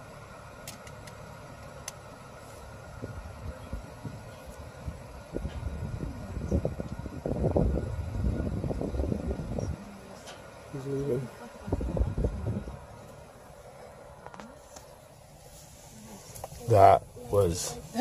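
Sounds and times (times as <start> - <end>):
engine idling: 0.0 - 18.0
uneven low rumbling: 1.3 - 17.3.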